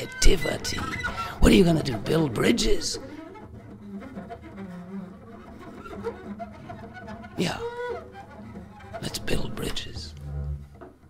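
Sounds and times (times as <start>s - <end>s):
bowed double bass: 0.0s - 11.0s.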